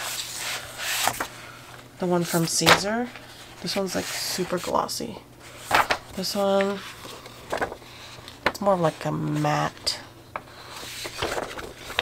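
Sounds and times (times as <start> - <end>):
vinyl sheets rustling and sliding: 0.0 - 12.0.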